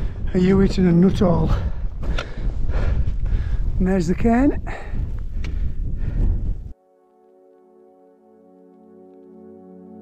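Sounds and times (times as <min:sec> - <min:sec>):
wind buffeting microphone: 0:00.0 - 0:06.8
soft ambient music: 0:06.7 - 0:10.0.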